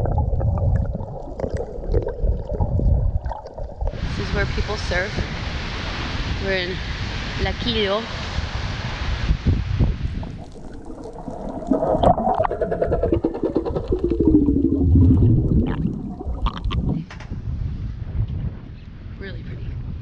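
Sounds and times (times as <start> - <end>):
water gurgling underwater: 0.0 - 6.0, 9.8 - 17.1
surf: 3.2 - 17.1
wind: 3.8 - 20.0.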